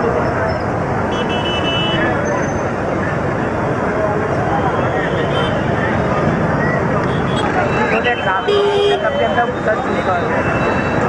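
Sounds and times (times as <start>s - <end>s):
crowd babble: 0.0s - 11.0s
traffic noise: 0.0s - 11.0s.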